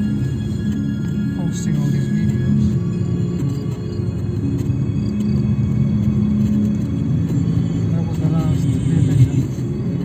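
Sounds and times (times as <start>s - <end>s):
music playing: 0.0s - 10.0s.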